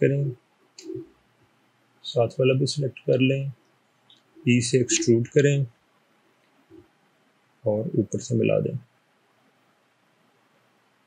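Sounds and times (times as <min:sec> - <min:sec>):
person speaking: 0:00.0 - 0:01.1, 0:02.0 - 0:03.6, 0:04.4 - 0:05.7, 0:07.7 - 0:08.9.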